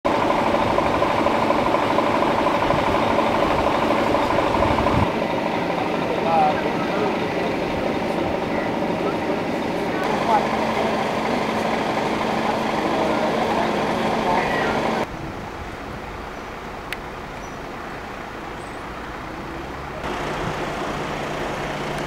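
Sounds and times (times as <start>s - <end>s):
street background: 0.0s - 22.0s
vehicle engine idling: 0.1s - 15.1s, 16.6s - 22.0s.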